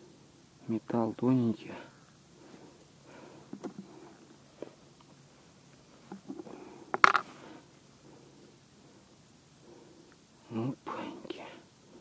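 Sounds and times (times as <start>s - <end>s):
hands rustling fishing tackle: 6.0s - 7.4s.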